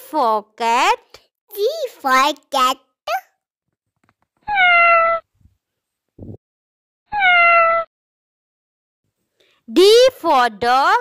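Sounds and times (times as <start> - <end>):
kitten meowing: 4.4 - 5.2, 7.1 - 7.9.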